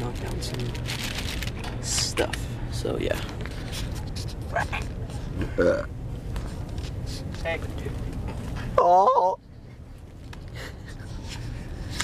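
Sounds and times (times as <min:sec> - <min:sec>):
low background hum: 0:00.0 - 0:12.0
person low vocal sound: 0:05.4 - 0:05.9.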